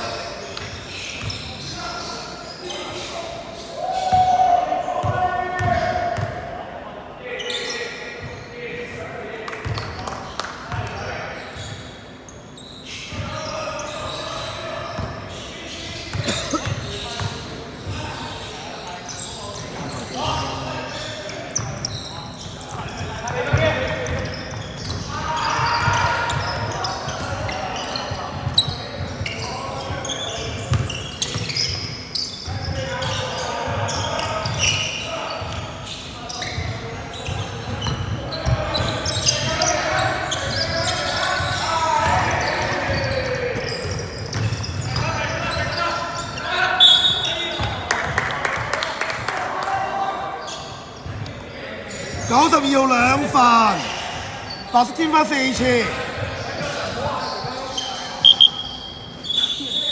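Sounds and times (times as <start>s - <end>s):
echoing voices: 13.1s - 30.7s, 32.5s - 59.9s
basketball bouncing: 30.7s - 31.5s.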